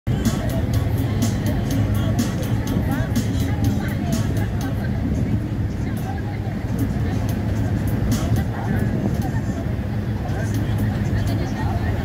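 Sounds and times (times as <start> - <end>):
boat engine rumble: 0.0 - 12.0
people talking faintly: 0.1 - 12.0.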